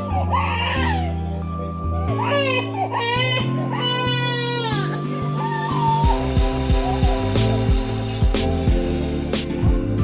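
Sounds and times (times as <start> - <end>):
baby crying: 0.0 - 7.6
background music with held chords: 0.0 - 10.0.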